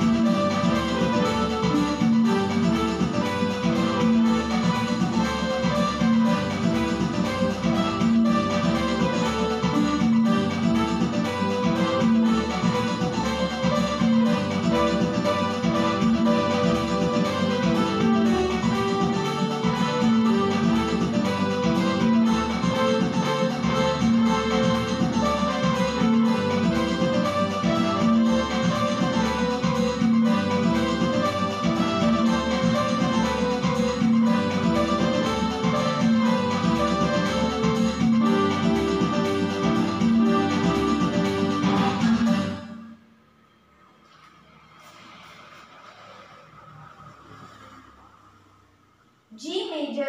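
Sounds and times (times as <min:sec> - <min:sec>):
electronic keyboard melody: 0:00.0 - 0:43.1.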